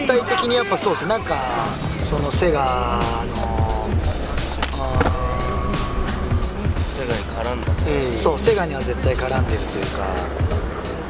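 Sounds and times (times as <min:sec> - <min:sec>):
hip-hop track: 0:00.0 - 0:11.0.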